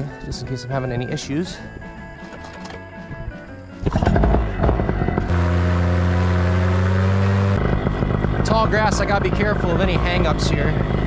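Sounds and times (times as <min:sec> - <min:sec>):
background music: 0:00.0 - 0:08.2
paramotor engine running: 0:03.8 - 0:11.0.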